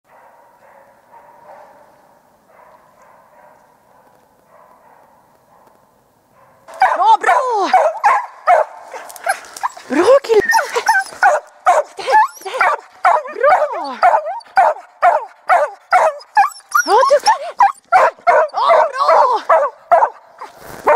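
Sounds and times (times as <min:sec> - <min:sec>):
hound baying: 0:06.7 - 0:20.9.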